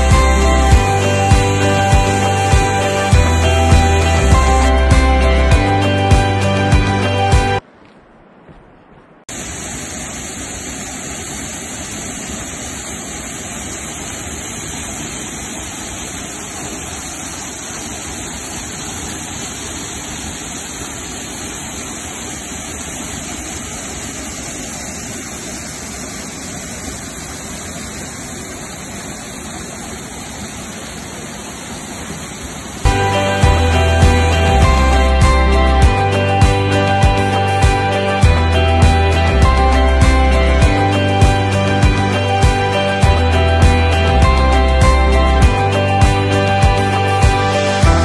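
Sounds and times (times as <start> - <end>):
waterfall rushing: 0.0 - 7.6, 9.3 - 48.0.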